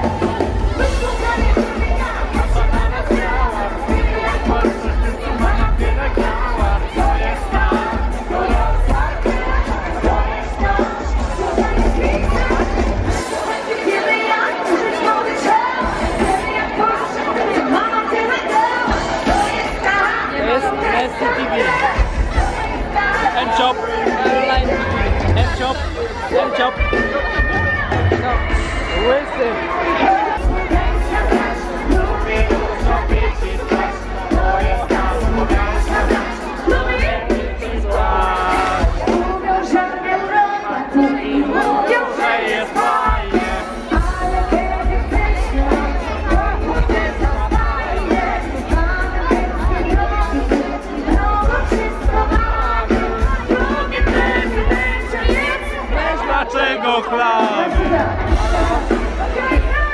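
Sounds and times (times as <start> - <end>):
woman singing: 0.0 - 28.0, 29.8 - 56.9, 57.5 - 59.9
crowd chatter: 0.0 - 59.9
music playing: 0.0 - 59.9.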